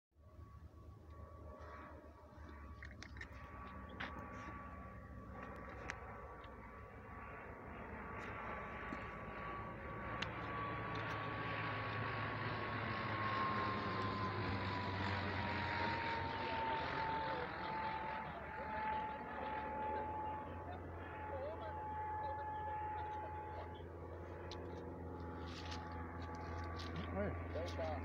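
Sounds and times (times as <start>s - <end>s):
propeller aircraft flying overhead: 0.2s - 28.0s.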